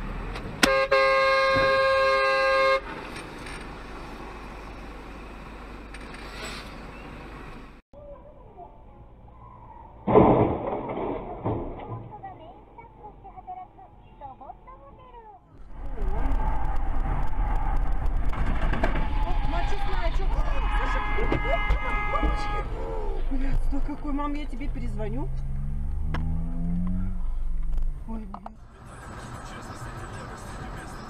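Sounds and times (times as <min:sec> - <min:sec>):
car road and engine noise: 0:00.0 - 0:10.6, 0:11.2 - 0:31.0
loud crash: 0:10.0 - 0:12.1, 0:15.9 - 0:19.7.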